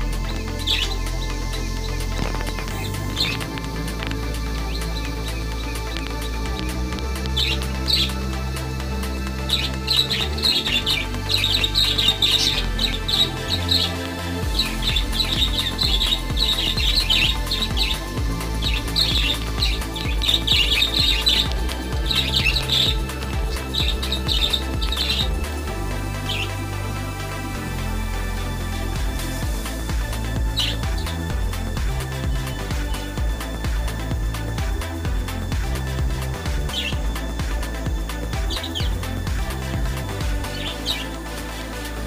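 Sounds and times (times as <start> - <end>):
background music with low notes: 0.0 - 42.0
cage birds chirping: 0.0 - 42.0.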